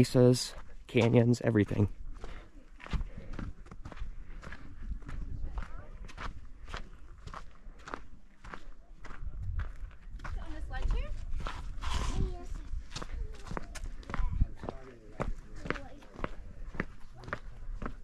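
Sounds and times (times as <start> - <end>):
footsteps on sandy trail: 0.0 - 18.0.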